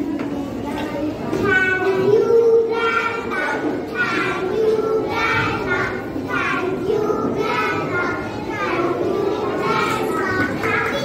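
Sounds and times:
girls chattering: 0.0 - 11.0.

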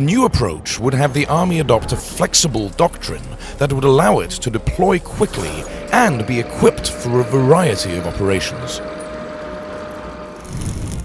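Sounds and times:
diesel engine running: 0.8 - 11.0.

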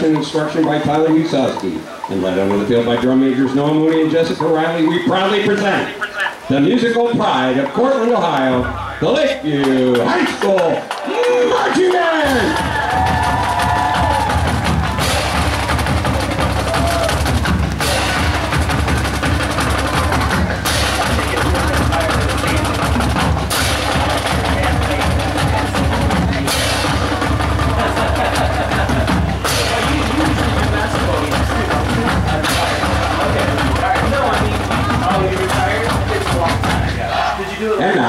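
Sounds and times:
snare drums: 0.0 - 38.0
bass drums: 6.5 - 38.0.

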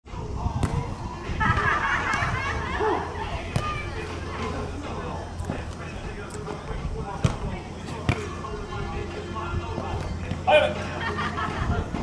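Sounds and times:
background voices: 0.1 - 12.0
ball kicked thuds: 0.5 - 2.3, 7.1 - 8.4.

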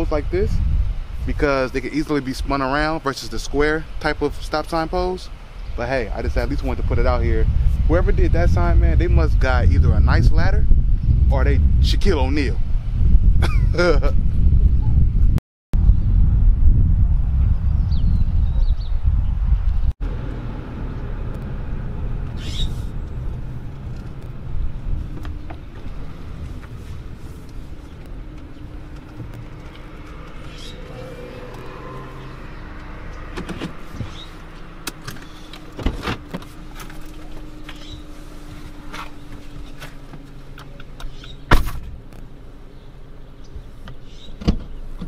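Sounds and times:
loud low rumble: 6.4 - 34.0
car engine hum in cabin: 19.3 - 45.0.

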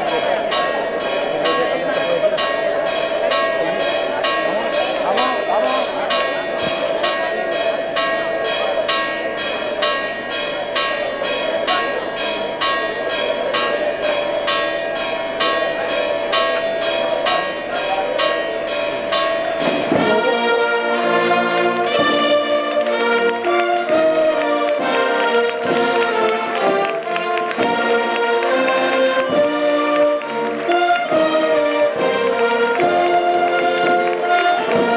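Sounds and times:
church bells ringing: 0.0 - 34.9
crowd murmuring: 0.0 - 34.9
brass band playing a march: 19.6 - 34.9.

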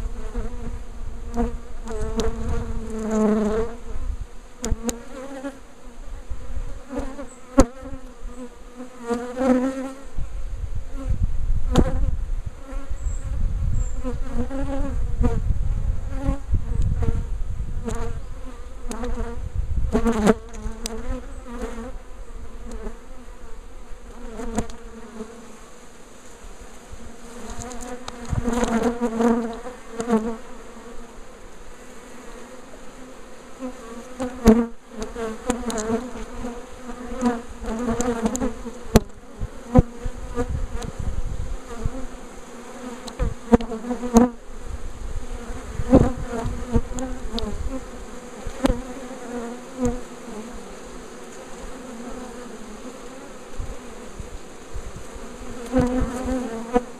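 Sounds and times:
bees buzzing: 0.0 - 56.9.

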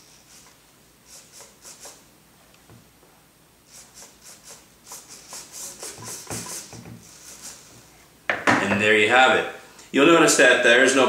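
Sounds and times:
servos whirring: 0.0 - 2.1.

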